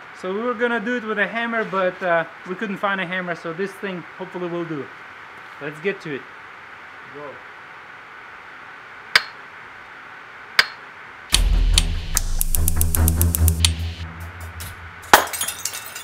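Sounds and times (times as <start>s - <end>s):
sharp ticks: 11.3s - 14.0s
heavy-bass music track: 11.3s - 15.3s
light bulb shattering: 14.6s - 16.0s
glass tinkling: 15.2s - 16.0s.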